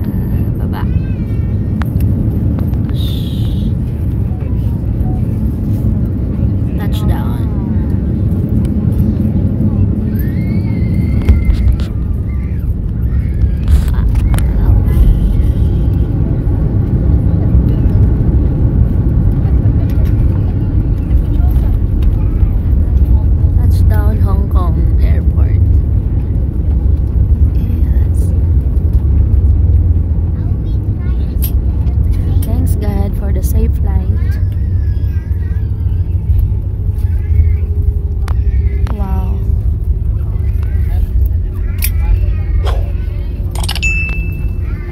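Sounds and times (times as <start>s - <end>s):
airliner cabin low rumble: 0.0s - 44.9s
faint voices: 0.0s - 44.9s.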